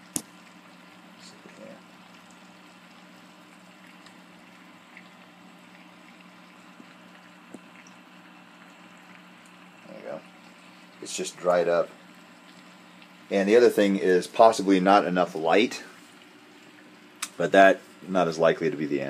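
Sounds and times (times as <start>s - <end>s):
water bubbling: 0.0s - 18.1s
air pump humming: 0.0s - 19.0s.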